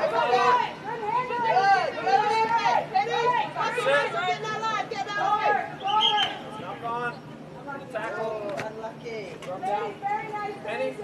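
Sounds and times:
girls shouting: 0:00.0 - 0:06.3.

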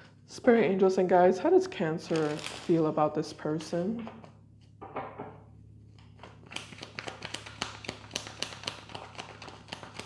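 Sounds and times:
cards being shuffled: 0:05.9 - 0:10.0.

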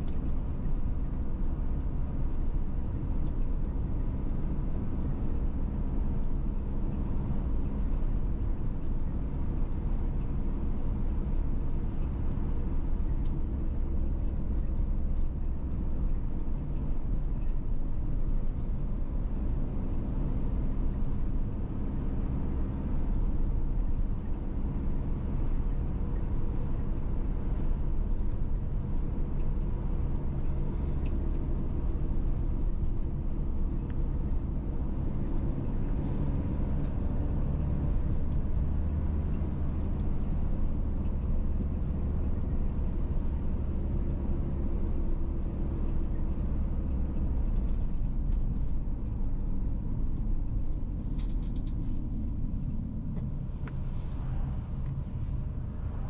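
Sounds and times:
vehicle engine and tyre drone: 0:00.0 - 0:56.0.

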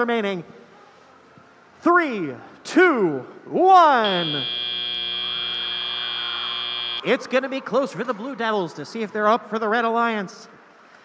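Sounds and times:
electronic buzzer: 0:04.0 - 0:07.1.

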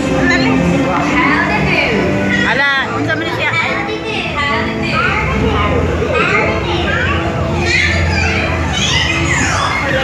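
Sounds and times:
high-pitched voices chattering and squealing: 0:00.0 - 0:10.0.

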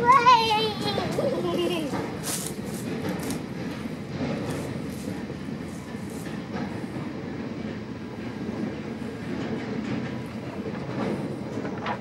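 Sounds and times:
train wheels on rails: 0:00.0 - 0:12.0.

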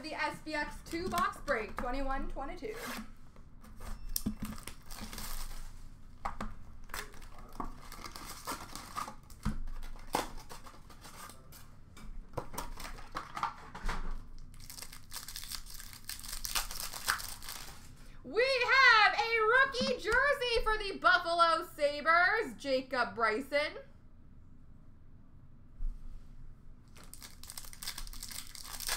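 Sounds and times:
wrappers tearing and crinkling: 0:04.4 - 0:05.9, 0:06.8 - 0:11.5, 0:12.6 - 0:13.8, 0:14.4 - 0:18.0, 0:26.9 - 0:28.9.

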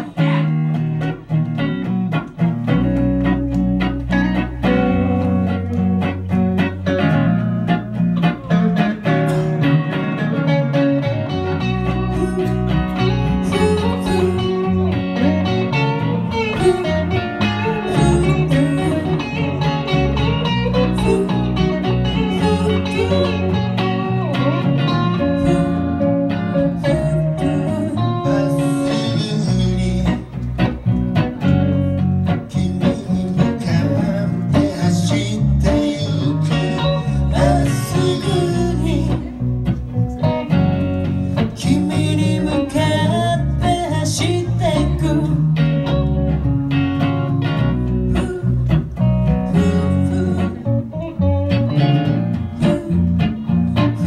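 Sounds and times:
drums: 0:00.0 - 0:54.0
electric guitars: 0:00.0 - 0:54.0
woman singing: 0:13.4 - 0:15.0, 0:17.6 - 0:19.9, 0:20.7 - 0:23.6.

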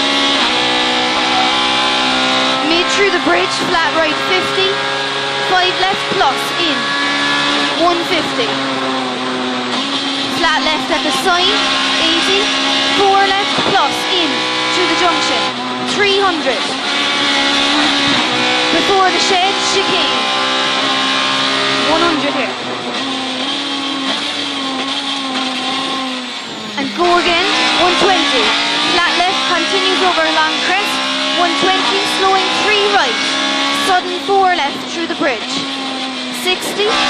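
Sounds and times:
car engine revving high: 0:00.0 - 0:37.0.

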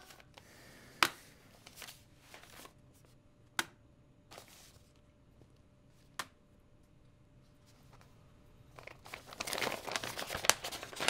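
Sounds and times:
paper envelopes rustling: 0:00.0 - 0:02.8, 0:04.3 - 0:05.0, 0:08.7 - 0:11.0
paper slaps: 0:06.2 - 0:06.4.

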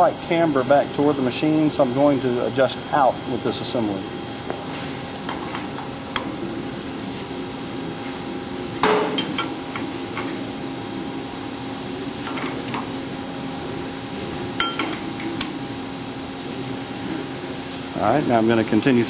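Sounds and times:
machine humming: 0:00.0 - 0:19.0.

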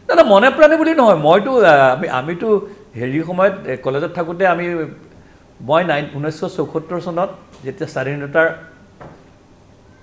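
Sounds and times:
faint room noise: 0:00.0 - 0:10.0
man speaking: 0:00.1 - 0:08.8.

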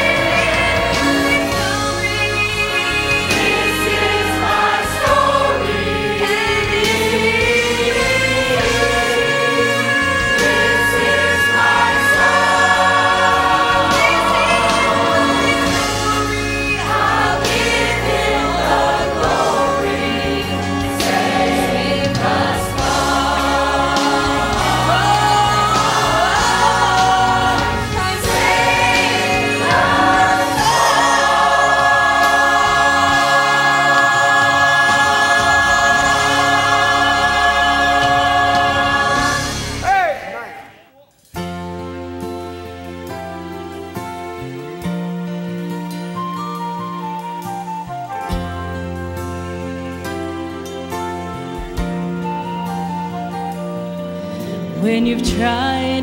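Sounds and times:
choir singing gospel song: 0:00.0 - 0:40.8, 0:47.4 - 0:56.0.

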